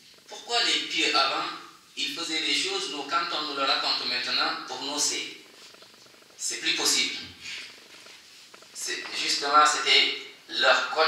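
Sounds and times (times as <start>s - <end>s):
man speaking: 0.3s - 5.4s, 6.4s - 7.6s, 8.8s - 11.0s
breathy hiss: 7.4s - 8.8s.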